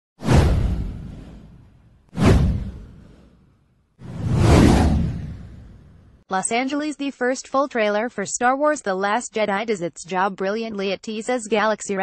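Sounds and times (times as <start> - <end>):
deep whoosh: 0.2 - 6.2.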